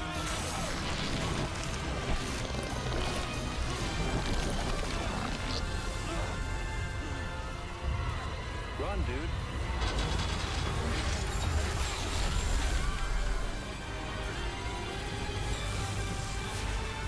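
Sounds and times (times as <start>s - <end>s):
dramatic background music: 0.0s - 17.0s
rushing hissing sound effect: 11.5s - 17.0s.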